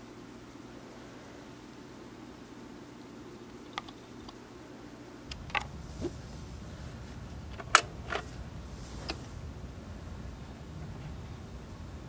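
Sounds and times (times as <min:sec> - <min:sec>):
low steady rumble: 0:00.0 - 0:12.0
vinyl record clicks and pops: 0:05.2 - 0:06.3, 0:07.3 - 0:09.3.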